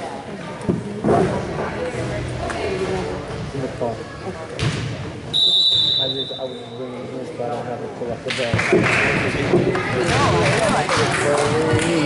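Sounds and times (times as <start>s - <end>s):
spectator chatter: 0.0s - 12.0s
referee's whistle: 5.3s - 6.8s.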